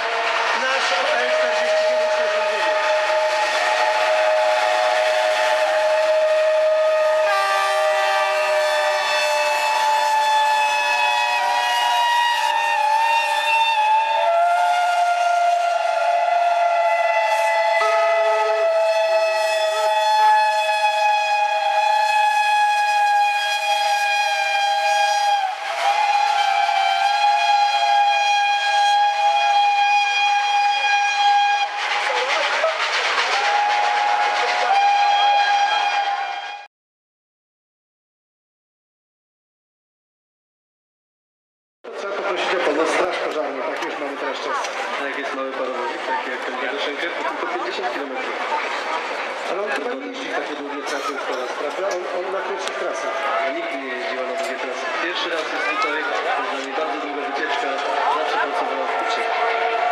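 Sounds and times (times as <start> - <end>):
steam locomotive whistles: 0.0 - 36.7, 51.0 - 59.9.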